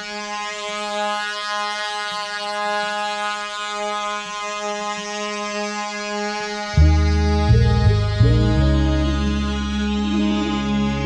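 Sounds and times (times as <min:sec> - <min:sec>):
low musical drone: 0:04.6 - 0:11.0.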